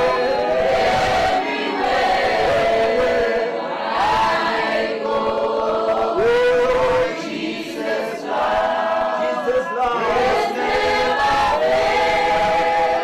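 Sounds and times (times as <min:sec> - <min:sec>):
congregation singing: 0:00.0 - 0:13.0.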